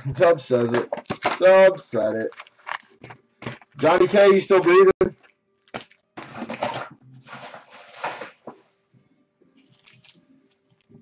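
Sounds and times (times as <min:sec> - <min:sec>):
foil wrappers crinkling: 0:01.0 - 0:08.6, 0:09.6 - 0:10.9.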